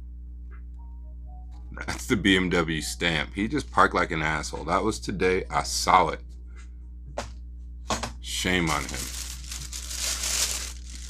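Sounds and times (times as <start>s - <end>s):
plastic packaging crinkling: 8.4s - 11.0s.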